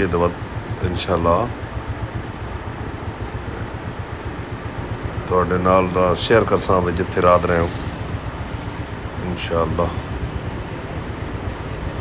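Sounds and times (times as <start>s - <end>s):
vehicle engine rumble: 0.0s - 12.0s.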